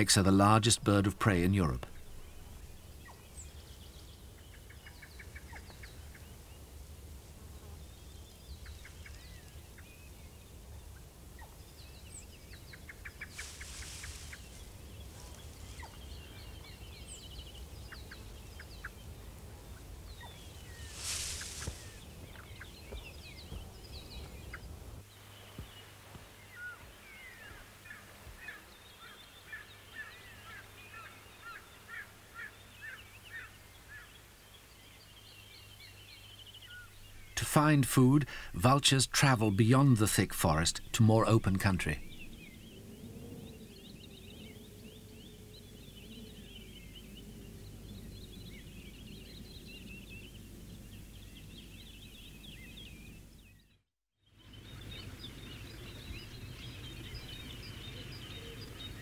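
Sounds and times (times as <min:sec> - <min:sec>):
small birds chirping: 0:00.0 - 0:59.0
short bursts of hiss: 0:20.9 - 0:22.0.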